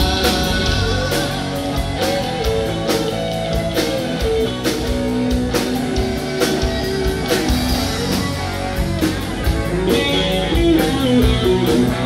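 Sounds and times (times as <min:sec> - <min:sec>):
bass guitar: 0:00.0 - 0:12.0
drums: 0:00.0 - 0:12.0
electric guitars: 0:00.0 - 0:12.0.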